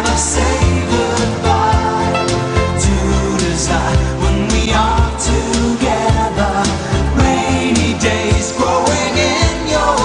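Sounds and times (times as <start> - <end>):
pop song with drums and singing: 0.0 - 10.0.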